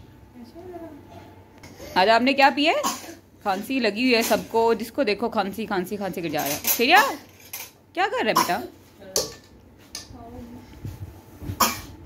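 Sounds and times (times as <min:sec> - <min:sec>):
person coughing: 0:02.8 - 0:03.2, 0:11.6 - 0:12.0.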